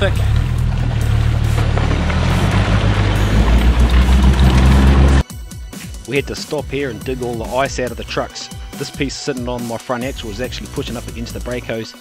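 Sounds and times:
car engine running: 0.0s - 5.2s
music: 0.0s - 12.0s
ice and water crunching under tyres: 0.2s - 5.2s.

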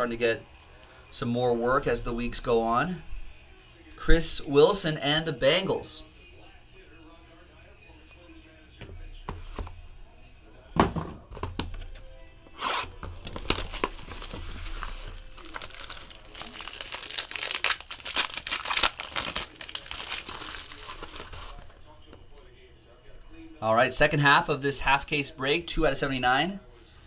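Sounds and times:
plastic wrap crinkling and tearing: 13.0s - 21.8s.

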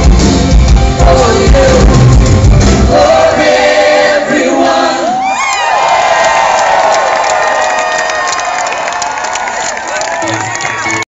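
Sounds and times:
rock band drums and bass: 0.0s - 3.0s
held singing voices: 1.0s - 5.4s
concert crowd cheering: 5.0s - 11.0s
crowd whooping: 5.0s - 11.0s.

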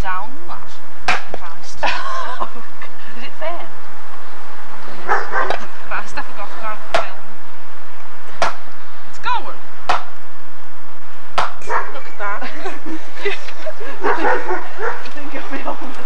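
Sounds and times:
sharp knocks: 1.0s - 1.5s, 8.3s - 8.7s, 9.8s - 10.2s, 11.3s - 12.0s
dog yelping: 5.0s - 5.7s, 11.6s - 12.0s, 14.0s - 15.1s.

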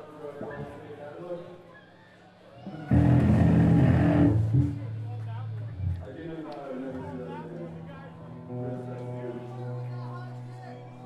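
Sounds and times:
band playing loud chord: 2.9s - 6.0s.

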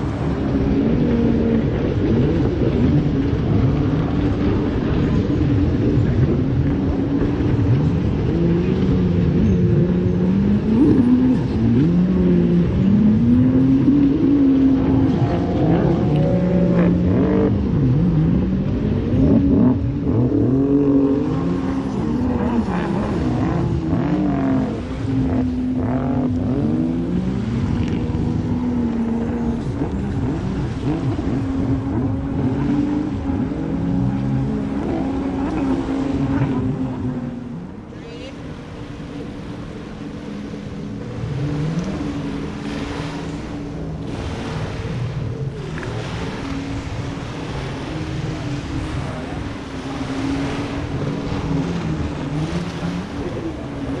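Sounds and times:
jet ski engines revving: 0.0s - 54.0s.

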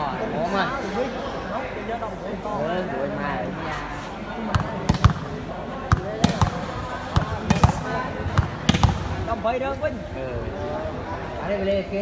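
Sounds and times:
crowd chatter: 0.0s - 12.0s
volleyball thuds: 4.5s - 9.2s.

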